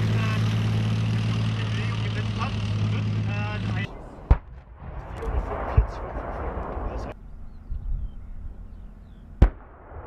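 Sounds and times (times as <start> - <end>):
tank diesel engine driving past: 0.0 - 4.3.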